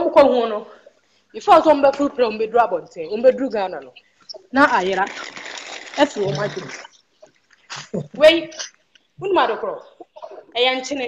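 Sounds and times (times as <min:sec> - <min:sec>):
voices on a video call: 0:00.0 - 0:11.0.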